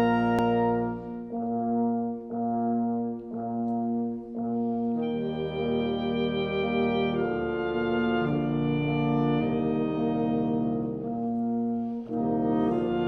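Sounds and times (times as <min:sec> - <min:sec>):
wind ensemble playing slow chords: 0:00.0 - 0:13.0.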